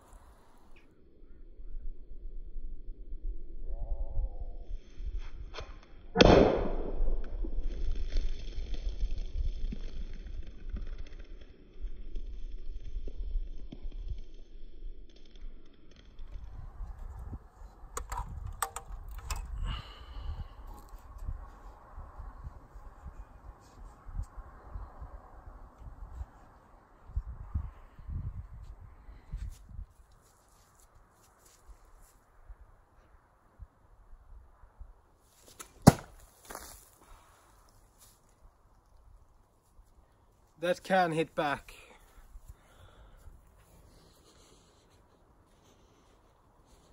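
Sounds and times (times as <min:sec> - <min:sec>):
sharp clicks: 0:17.9 - 0:19.6
hammer-axe striking wooden log: 0:35.8 - 0:36.2.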